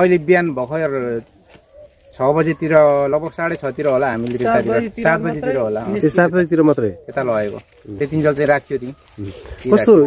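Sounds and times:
man talking: 0.0 - 1.4, 2.0 - 10.0.

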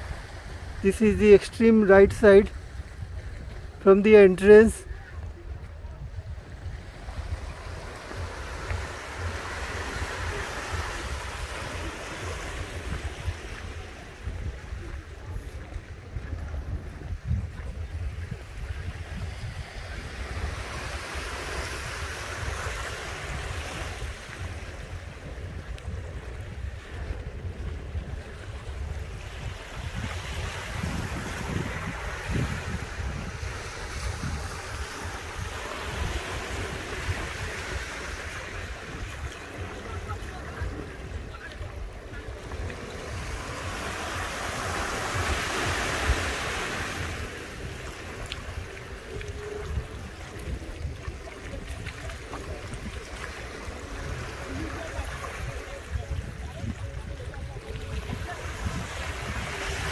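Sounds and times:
small waves washing onto shore: 0.0 - 59.9
wind buffeting microphone: 0.0 - 59.9.

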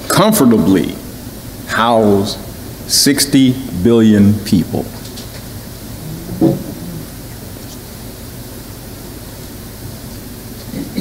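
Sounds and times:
room noise hiss: 0.0 - 11.0
man's low vocal sound: 5.8 - 7.6.

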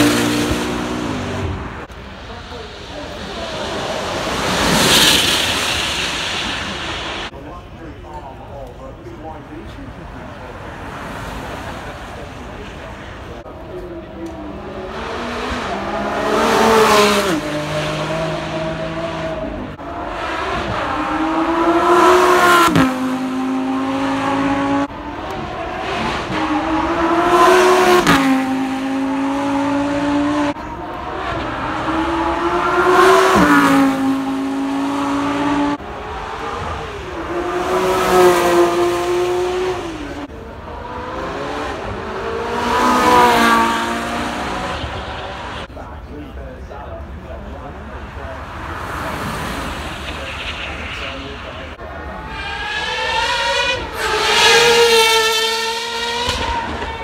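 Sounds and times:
supercar engines accelerating: 0.0 - 7.3, 9.2 - 57.0.

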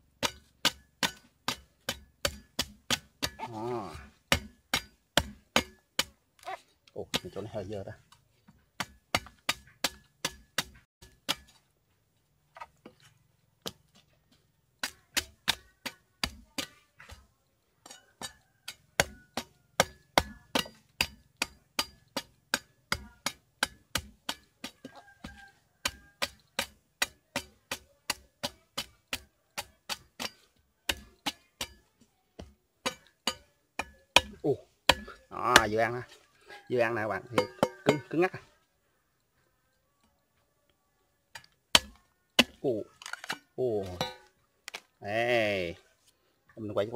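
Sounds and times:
machete chopping coconut husk: 0.1 - 7.8, 8.8 - 11.6, 14.8 - 17.2, 17.8 - 38.4, 41.3 - 44.9.

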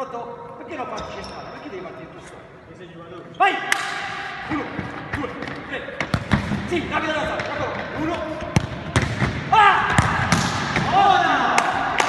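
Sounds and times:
ball bouncing on wooden floor: 4.8 - 6.6
people shouting: 9.5 - 12.0.

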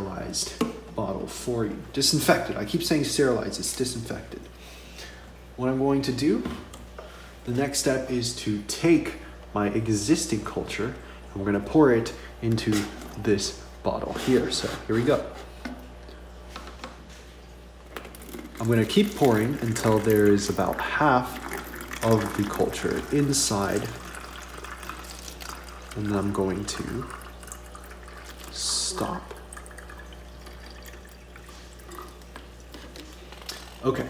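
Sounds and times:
steady low hum: 0.0 - 34.0
liquid pouring into bottle: 17.5 - 34.0
plastic bottles being handled: 30.8 - 34.0.

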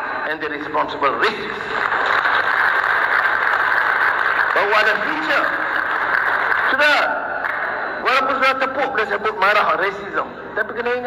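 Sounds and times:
audience clapping: 1.1 - 7.8.

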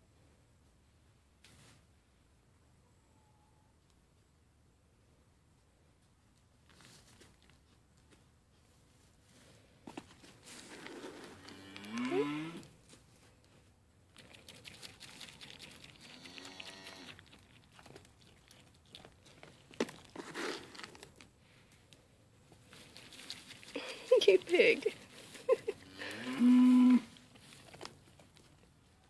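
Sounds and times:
goats crunching feed pellets: 9.4 - 29.0.

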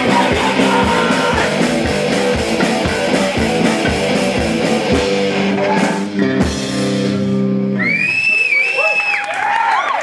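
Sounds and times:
crowd cheering and whooping: 7.7 - 10.0.

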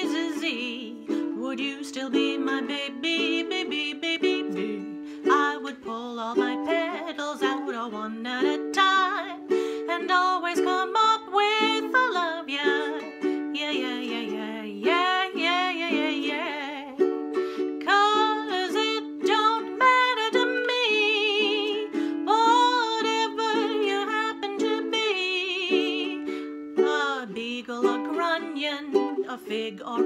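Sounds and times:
strummed ukulele chords: 0.0 - 30.0
woman singing with vibrato: 0.0 - 30.0.

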